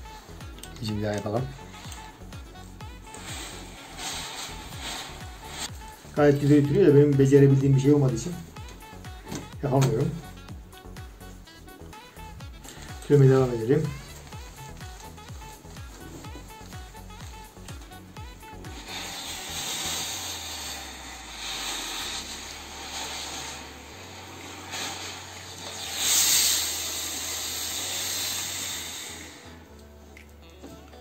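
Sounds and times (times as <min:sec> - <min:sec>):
steam iron hissing bursts: 0:00.0 - 0:10.4, 0:11.9 - 0:29.7
background music: 0:00.0 - 0:31.0.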